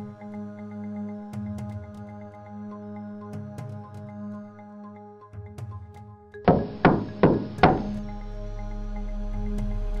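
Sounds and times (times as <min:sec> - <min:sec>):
background music with sustained tones: 0:00.0 - 0:10.0
knocks on sheet-metal gate: 0:06.5 - 0:08.0.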